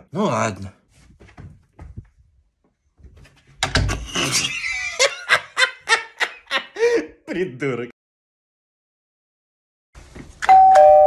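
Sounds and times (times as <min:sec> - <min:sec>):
man laughing loudly: 0:03.9 - 0:07.3.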